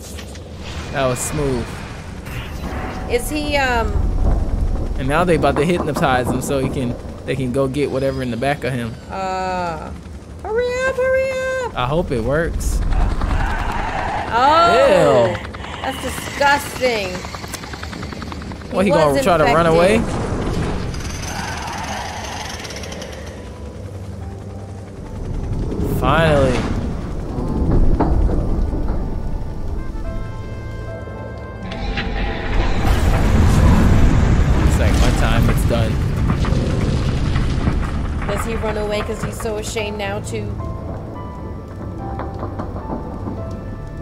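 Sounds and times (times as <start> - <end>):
mechanical whirring and clanking: 0.0 - 9.1, 15.4 - 44.0
steady low rumble: 0.0 - 44.0.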